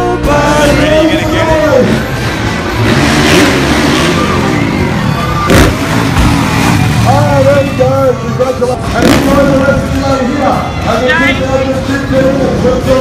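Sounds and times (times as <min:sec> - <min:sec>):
dirt bike engine revving: 0:00.6 - 0:07.9, 0:08.7 - 0:10.0.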